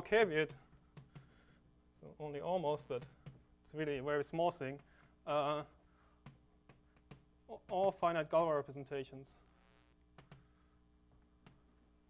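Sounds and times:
chalk tapping on blackboard: 0:00.4 - 0:01.3.

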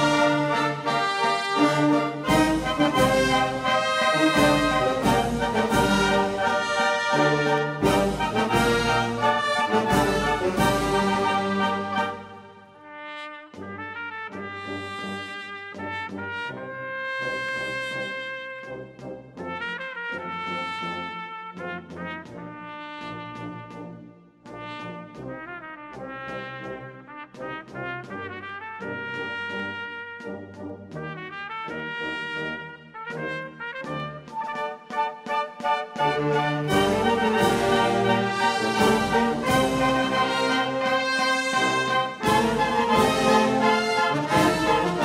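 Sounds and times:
wind band playing a march: 0:00.0 - 0:45.0.

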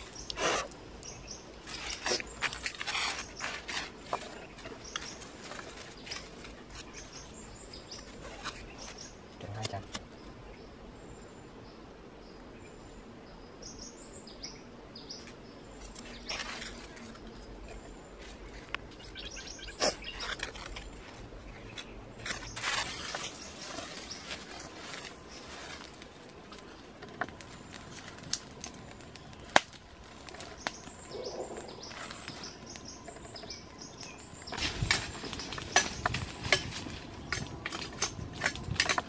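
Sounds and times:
dry leaves and twigs rustling: 0:00.0 - 0:00.3, 0:01.0 - 0:10.1, 0:15.1 - 0:39.0.

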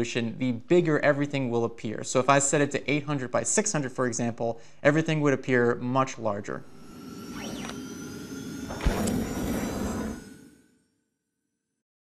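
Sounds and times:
electronic rising and falling glide: 0:06.4 - 0:10.8
sharp hit with noisy swell: 0:06.5 - 0:10.8.

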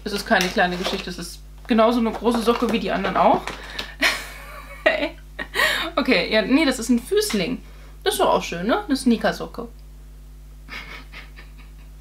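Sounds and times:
steady low hum: 0:00.0 - 0:12.0
woman laughing breathily: 0:03.7 - 0:06.0, 0:10.7 - 0:12.0.

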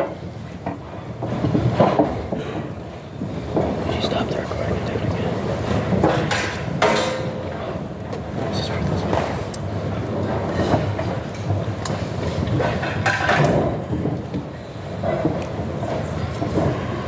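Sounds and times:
murmur of many voices: 0:03.4 - 0:11.0.

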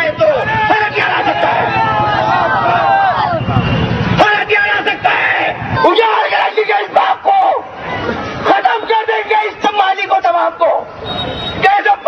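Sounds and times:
man speaking into a microphone: 0:00.0 - 0:01.6, 0:08.4 - 0:10.9, 0:11.6 - 0:12.0.

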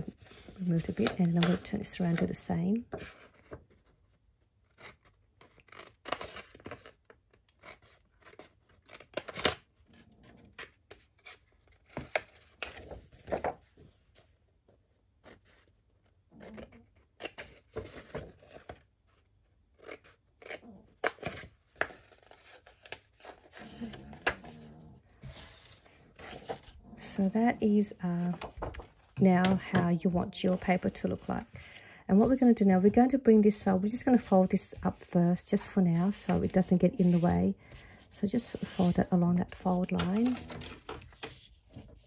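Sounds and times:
scissors cutting paper: 0:19.7 - 0:24.6.

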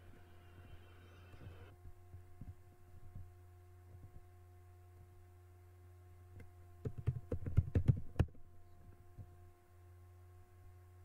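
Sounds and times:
steady low hum: 0:00.0 - 0:11.0
computer keyboard clicking: 0:06.8 - 0:08.3.

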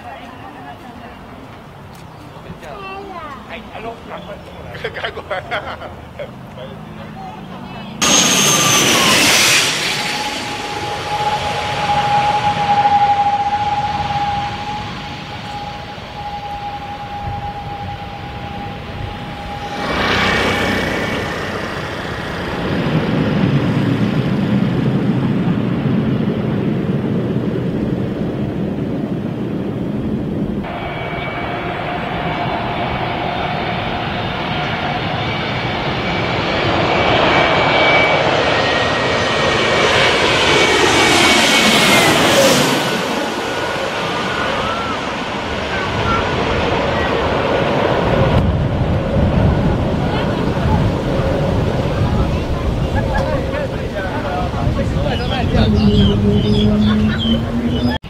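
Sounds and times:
jet airliner flying overhead: 0:00.0 - 0:58.0
turboprop engine whine: 0:00.0 - 0:58.0
rough turboprop engine on runway: 0:00.6 - 0:58.0.

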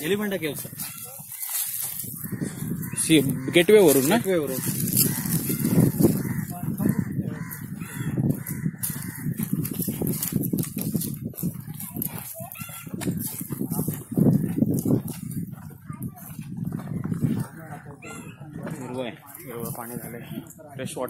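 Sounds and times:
bird calling: 0:00.0 - 0:09.6, 0:17.5 - 0:18.5
footsteps crackling on dry ground: 0:00.0 - 0:20.3
indistinct voices: 0:00.0 - 0:20.7.

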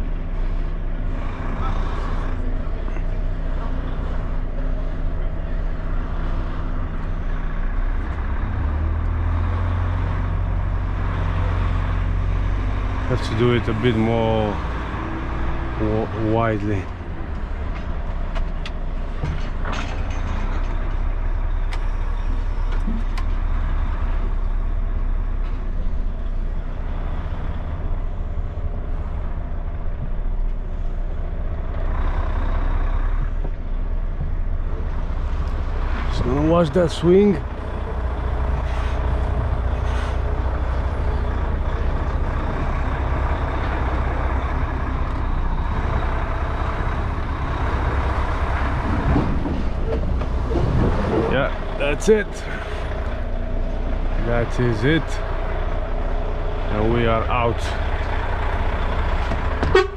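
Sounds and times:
diesel lorry engine rumble: 0:00.0 - 0:59.9.

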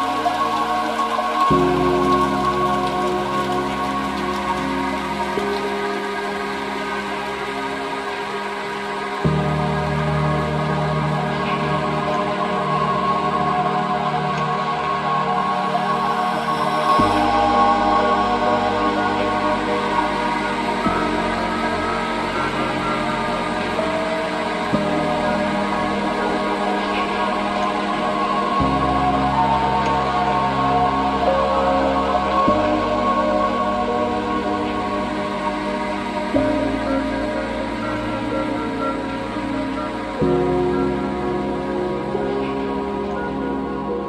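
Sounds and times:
constant hiss: 0:00.0 - 0:44.0
synthesizer pad chords: 0:00.0 - 0:44.0.

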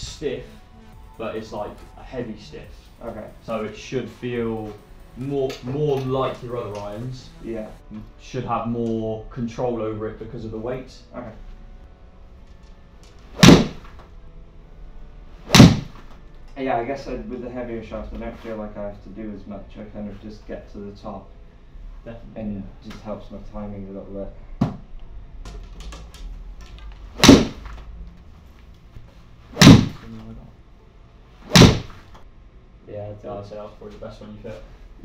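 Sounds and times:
golf iron shots cracking: 0:13.2 - 0:14.0, 0:15.5 - 0:16.1, 0:27.1 - 0:27.8, 0:29.6 - 0:30.0, 0:31.5 - 0:32.1.

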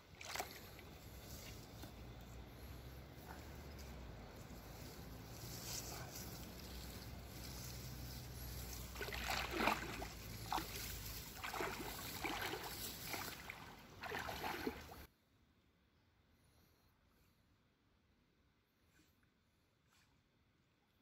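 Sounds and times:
water splashing and sloshing: 0:00.0 - 0:02.1, 0:06.5 - 0:15.1.

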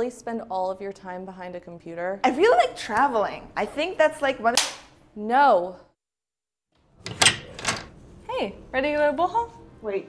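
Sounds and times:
sharp door or drawer clacks: 0:07.0 - 0:08.0.

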